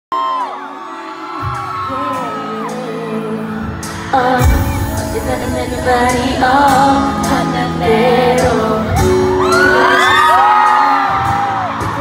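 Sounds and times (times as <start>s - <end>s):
fans whooping and screaming: 0.1s - 3.9s, 9.0s - 12.0s
live pop concert music: 0.1s - 12.0s.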